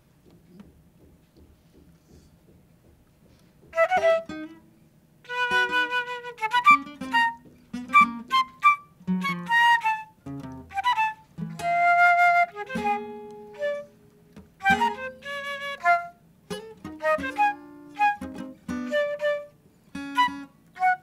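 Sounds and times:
flute playing phrases: 0:03.7 - 0:04.6, 0:05.2 - 0:21.0
plucked acoustic guitar: 0:03.7 - 0:04.6, 0:05.3 - 0:21.0.

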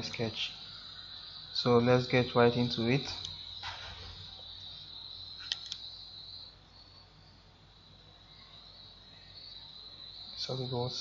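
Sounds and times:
high-pitched background hiss: 0:00.0 - 0:11.0
quick clicks: 0:05.4 - 0:05.8.

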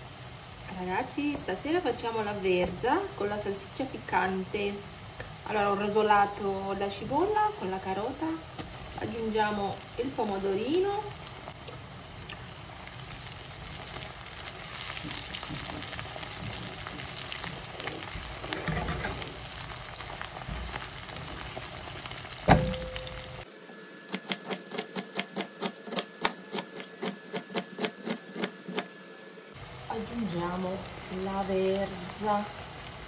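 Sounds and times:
vegetables sizzling in hot oil: 0:00.0 - 0:23.5, 0:29.5 - 0:33.0
metallic knock on pan: 0:22.5 - 0:23.4.

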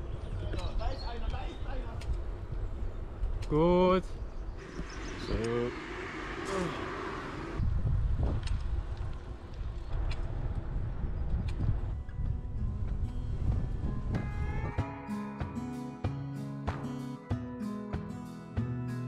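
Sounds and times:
wind noise on microphone: 0:04.2 - 0:14.9
plucked acoustic guitar music: 0:14.0 - 0:19.0.

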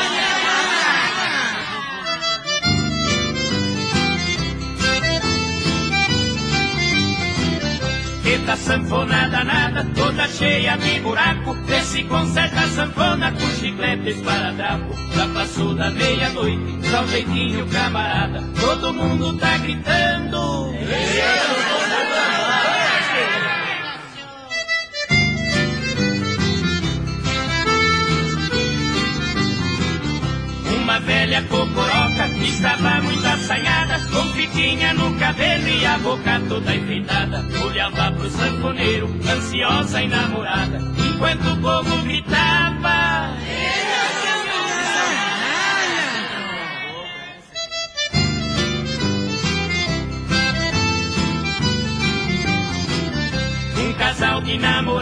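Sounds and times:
accordion lead: 0:00.0 - 0:46.5, 0:47.4 - 0:55.0
band playing upbeat song: 0:02.0 - 0:21.2, 0:24.5 - 0:43.4, 0:47.5 - 0:55.0.

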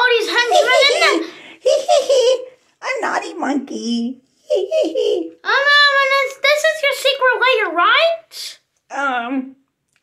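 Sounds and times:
person laughing: 0:00.4 - 0:02.6, 0:04.5 - 0:05.4.

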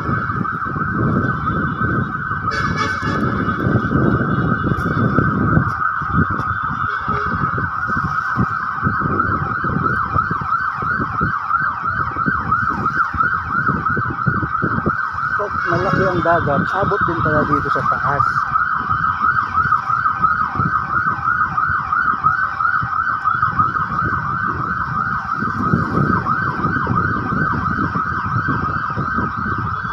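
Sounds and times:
siren rising sweep: 0:00.0 - 0:29.9
wind buffeting microphone: 0:00.0 - 0:29.9.

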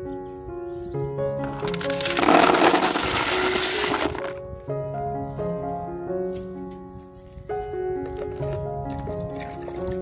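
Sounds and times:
snail shells clattering: 0:01.5 - 0:04.4.

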